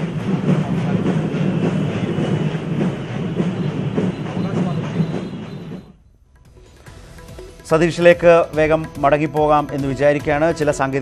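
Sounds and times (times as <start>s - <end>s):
man's voice: 7.7s - 11.0s.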